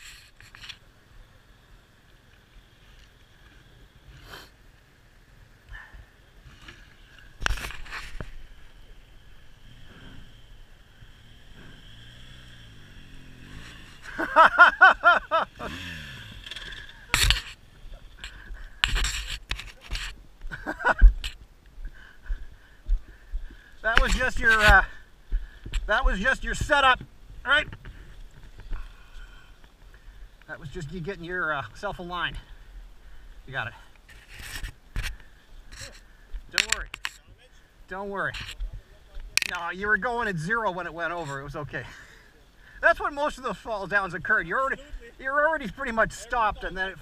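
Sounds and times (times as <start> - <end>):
motorcycle engine revving: 7.4 - 19.1.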